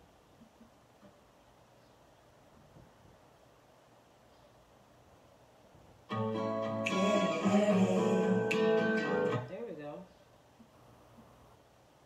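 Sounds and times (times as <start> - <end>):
acoustic guitar strumming: 6.1 - 9.6
wavering vocal note: 6.2 - 9.4.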